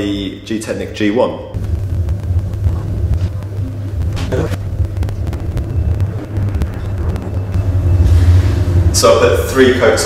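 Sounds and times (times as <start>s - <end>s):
low rumble: 1.6s - 10.0s.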